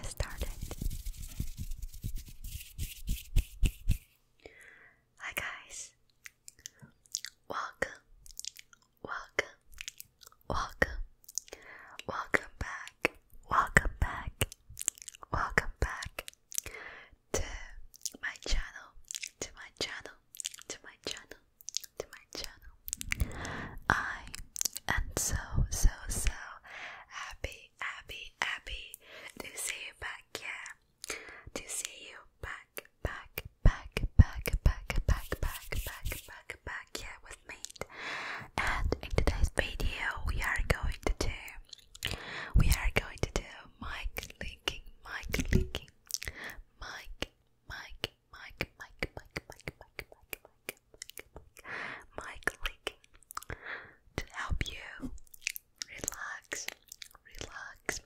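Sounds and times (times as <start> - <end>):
wet mouth clicks and smacks: 6.1 - 11.6, 13.8 - 16.8, 17.9 - 18.3, 19.0 - 23.6, 24.3 - 25.0, 40.6 - 43.1, 44.0 - 53.6, 54.2 - 58.0.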